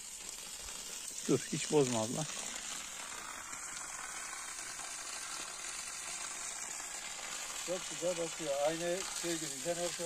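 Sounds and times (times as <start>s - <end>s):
water jet spraying from hose: 0.0s - 10.0s.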